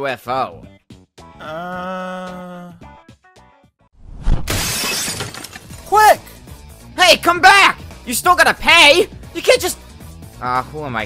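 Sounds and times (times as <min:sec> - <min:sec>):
glass shattering: 0:04.5 - 0:05.9.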